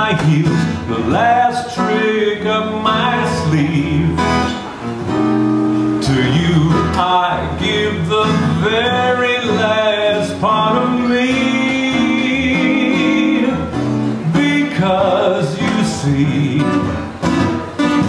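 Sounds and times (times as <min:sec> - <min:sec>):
man singing: 0:00.0 - 0:04.6, 0:05.9 - 0:18.0
acoustic guitar: 0:00.0 - 0:18.0.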